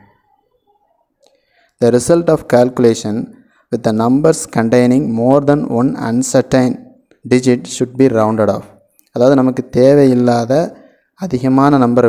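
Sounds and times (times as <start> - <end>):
man speaking: 1.8 - 12.0.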